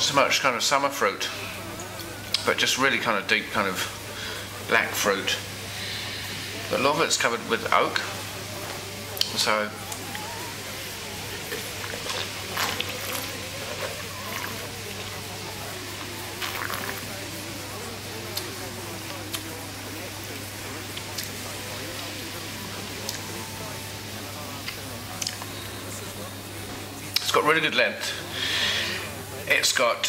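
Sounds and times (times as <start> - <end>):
faint background voices: 0.0 - 30.0.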